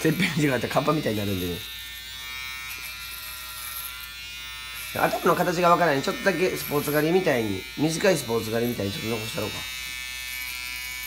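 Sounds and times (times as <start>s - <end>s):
electric hair clippers buzzing: 0.0s - 11.0s.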